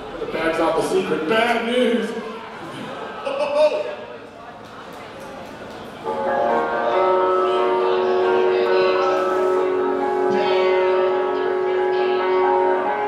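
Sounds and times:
live rock band playing: 0:06.1 - 0:13.0.

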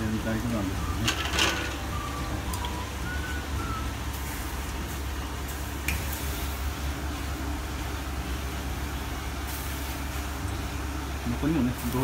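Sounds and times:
gas burner flame rumble: 0:00.0 - 0:12.0
water boiling: 0:00.0 - 0:12.0.

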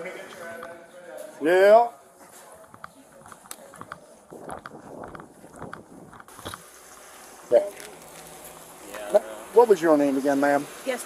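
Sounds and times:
footsteps: 0:02.1 - 0:09.1
steady hiss: 0:04.4 - 0:11.0.

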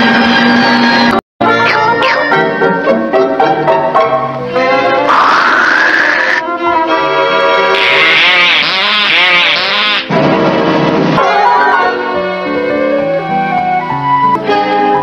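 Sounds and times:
cartoon background music: 0:01.4 - 0:15.0.

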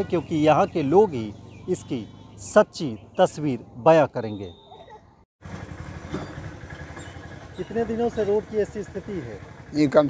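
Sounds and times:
vehicle engine running: 0:05.4 - 0:10.0.

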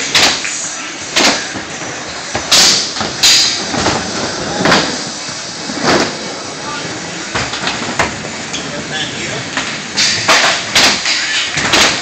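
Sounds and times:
skateboard wheels rolling: 0:00.0 - 0:12.0.

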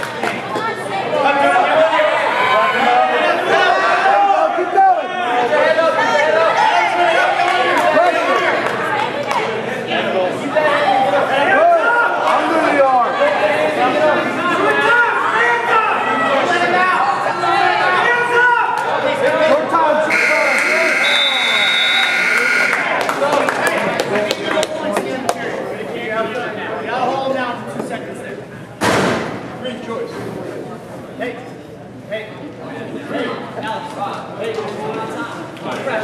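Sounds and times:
overlapping chatter of voices: 0:00.0 - 0:36.0
people talking and shouting: 0:00.0 - 0:36.0
scoreboard buzzer: 0:20.1 - 0:22.9.

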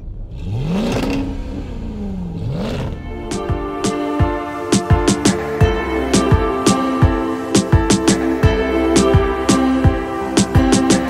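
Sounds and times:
car engine revving: 0:00.0 - 0:11.0
music with sharp beats: 0:03.1 - 0:11.0.

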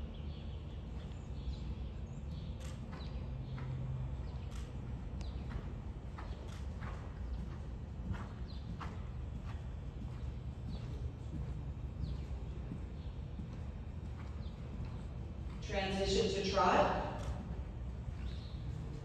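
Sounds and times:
steady low rumble: 0:00.0 - 0:19.0
horse hoofbeats on soft ground: 0:00.7 - 0:19.0.

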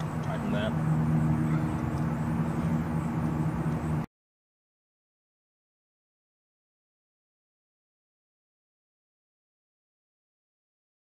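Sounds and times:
low mechanical hum: 0:00.0 - 0:04.1.

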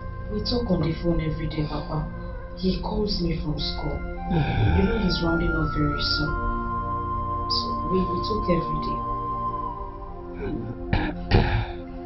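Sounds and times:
soft background music: 0:00.0 - 0:12.0
man clearing his throat: 0:10.4 - 0:11.8.

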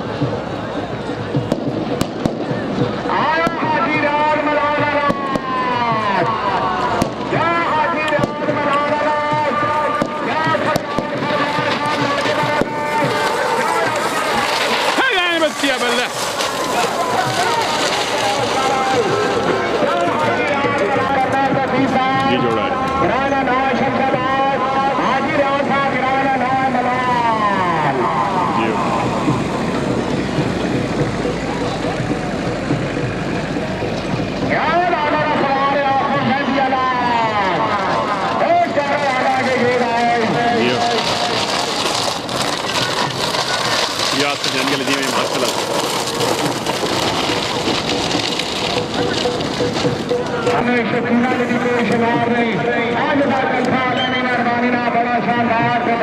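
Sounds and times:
commentator over loudspeaker: 0:00.0 - 0:56.0
crowd noise: 0:00.0 - 0:56.0.

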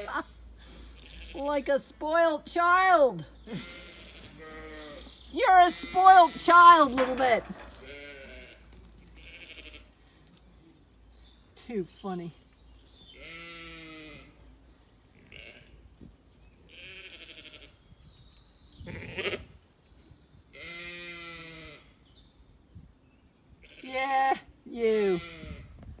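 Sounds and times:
sheep and lambs bleating: 0:00.0 - 0:01.6, 0:03.4 - 0:10.1, 0:13.1 - 0:14.5, 0:15.1 - 0:15.9, 0:16.6 - 0:17.9, 0:18.8 - 0:19.6, 0:20.5 - 0:22.0, 0:23.5 - 0:25.7.

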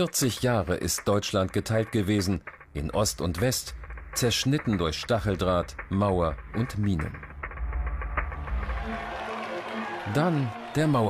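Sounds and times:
background music with low notes: 0:00.0 - 0:11.0
deep steady rumble: 0:00.6 - 0:08.6.

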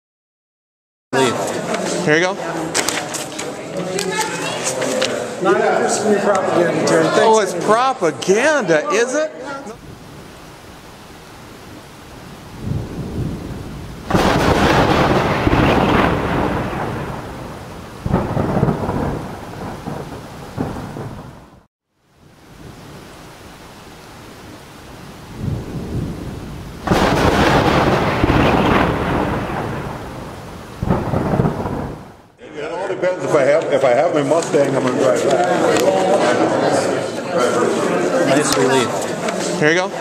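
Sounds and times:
rain: 0:09.7 - 0:32.4
thunder rumbling: 0:09.8 - 0:32.4.

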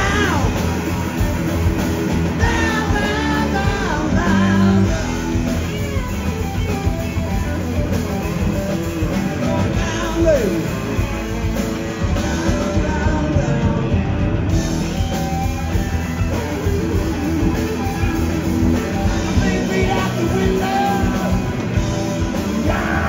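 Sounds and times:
blues-rock band playing: 0:00.0 - 0:23.0.

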